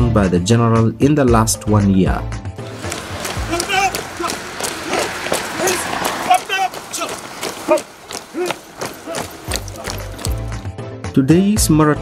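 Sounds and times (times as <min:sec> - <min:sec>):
runners' footsteps on pavement: 0:02.6 - 0:10.7.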